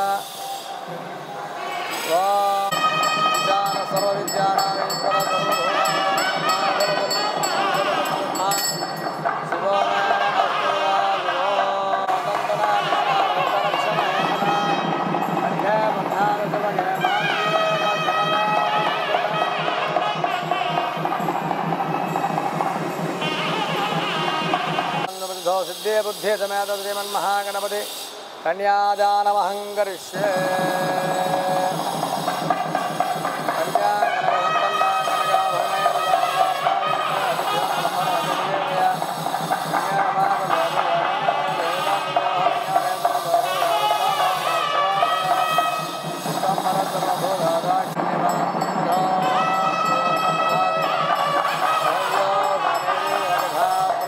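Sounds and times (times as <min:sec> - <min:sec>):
double-reed pipe melody: 0:01.9 - 0:25.1, 0:30.2 - 0:54.0
quick even drum beat: 0:02.7 - 0:25.2, 0:30.2 - 0:54.0.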